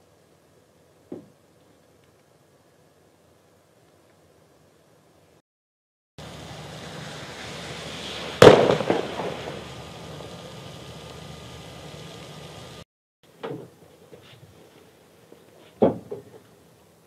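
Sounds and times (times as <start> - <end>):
loud rumbling bang: 6.2 - 10.7
heavy rain: 6.2 - 12.8.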